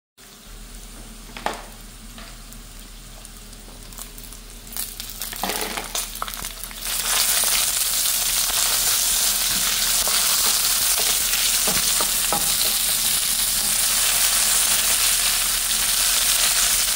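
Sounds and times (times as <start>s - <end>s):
food sizzling in oil: 0.2s - 16.9s.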